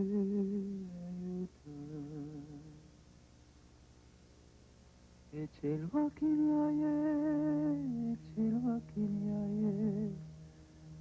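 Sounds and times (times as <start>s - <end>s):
person humming slow melody: 0.0s - 2.9s, 5.4s - 11.0s
steady low tone: 0.0s - 11.0s.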